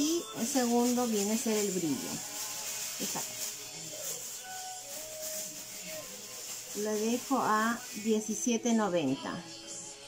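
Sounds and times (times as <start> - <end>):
quiet background music: 0.0 - 10.0
steady hiss: 1.0 - 8.2.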